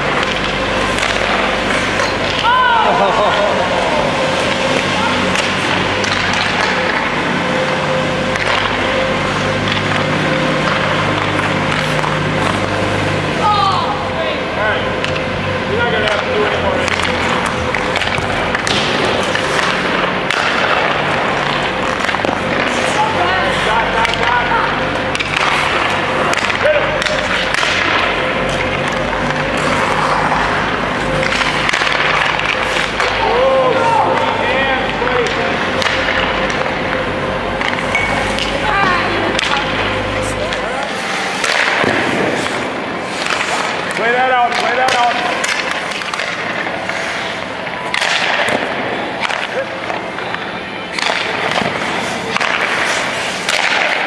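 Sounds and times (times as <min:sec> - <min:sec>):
hockey sticks knocking pucks: 0:00.0 - 0:13.4, 0:15.0 - 0:15.3, 0:16.0 - 0:54.0
steady hum: 0:00.0 - 0:54.0.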